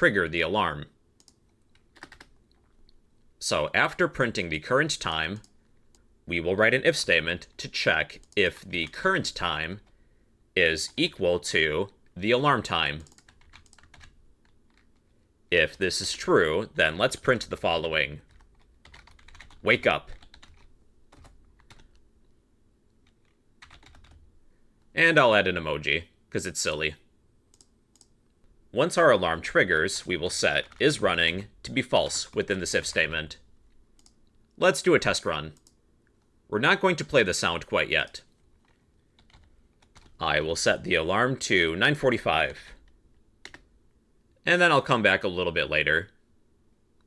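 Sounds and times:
computer keyboard keystrokes: 1.2 - 2.3, 13.0 - 14.9, 18.3 - 22.0, 23.1 - 24.2, 39.2 - 40.2, 43.4 - 43.6
faint typing on a keyboard: 1.2 - 4.4, 5.0 - 6.1, 7.4 - 10.0, 11.8 - 15.3, 17.2 - 25.0, 26.6 - 28.6, 30.3 - 31.3, 31.9 - 34.6, 35.5 - 36.4, 37.9 - 40.2, 42.1 - 43.7.

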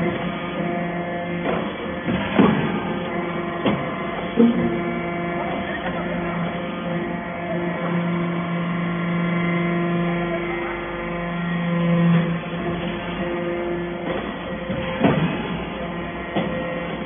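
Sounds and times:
hydraulic press humming: 0.0 - 17.0.

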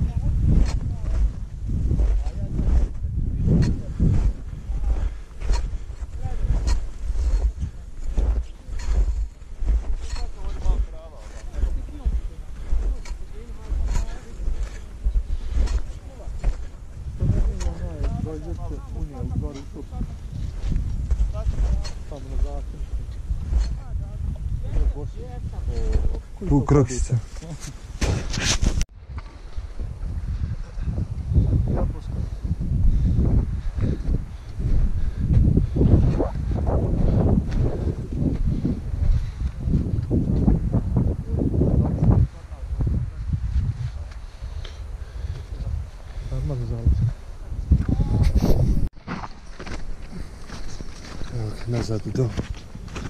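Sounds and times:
people talking: 0.0 - 1.2, 2.0 - 2.7, 6.2 - 6.7, 10.0 - 15.1, 17.2 - 20.2, 21.3 - 22.8, 23.6 - 27.7, 51.3 - 52.4
footsteps crunching in snow: 0.0 - 30.2, 32.2 - 40.9, 42.2 - 53.0
wind rumbling on microphone: 0.0 - 53.0.

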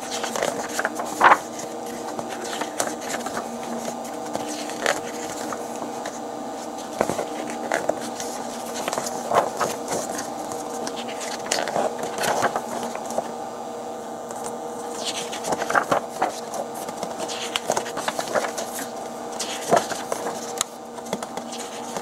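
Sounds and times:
paper pages rustling: 0.0 - 13.4, 14.3 - 22.0
steady background hum: 0.0 - 22.0.

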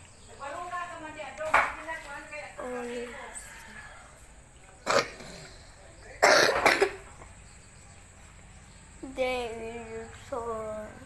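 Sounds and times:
person coughing: 6.2 - 7.0.

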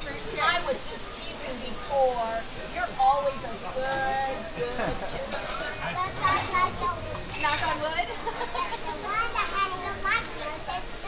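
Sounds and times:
child laughing: 8.2 - 9.4.

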